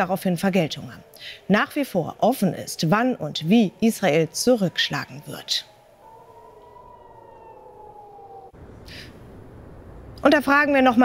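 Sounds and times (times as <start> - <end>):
air-raid siren: 0.0 - 11.0.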